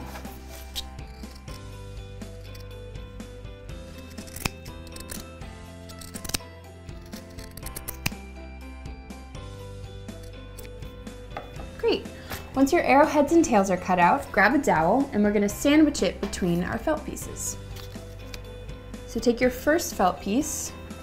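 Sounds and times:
soft background music: 0:00.0 - 0:21.0
scissors snipping felt: 0:00.6 - 0:02.8, 0:03.9 - 0:08.2.

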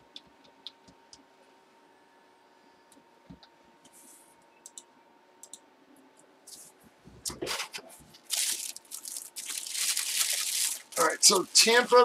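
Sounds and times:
faint clicks: 0:04.6 - 0:05.6
packaging rustling and crackling: 0:08.2 - 0:12.0.

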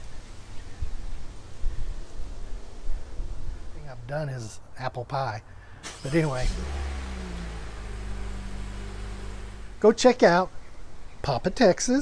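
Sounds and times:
background hiss: 0:00.0 - 0:12.0
low mechanical hum: 0:05.8 - 0:11.3.

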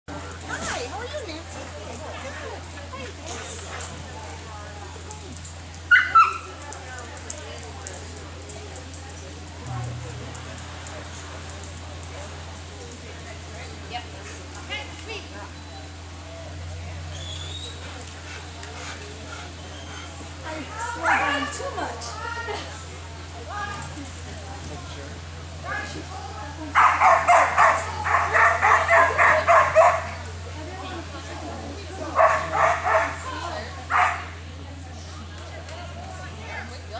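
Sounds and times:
faint background chatter: 0:00.1 - 0:36.9
dog yipping: 0:05.9 - 0:06.5
dog barking rapidly: 0:26.8 - 0:30.2, 0:32.2 - 0:33.3, 0:33.9 - 0:34.3.

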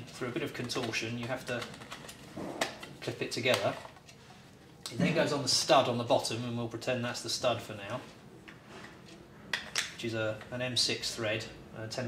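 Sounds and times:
handling plastic parts: 0:00.0 - 0:04.8.

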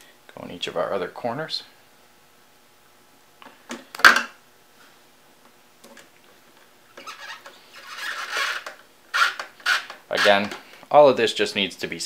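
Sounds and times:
screwdriver rasping screw into metal: 0:08.0 - 0:10.4.

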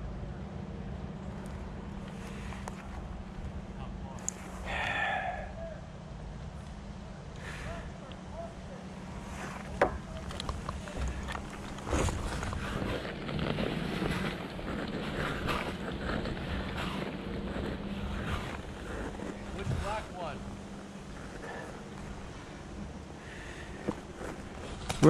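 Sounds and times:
steady low hum: 0:00.0 - 0:25.0
footsteps through long grass: 0:08.8 - 0:25.0.

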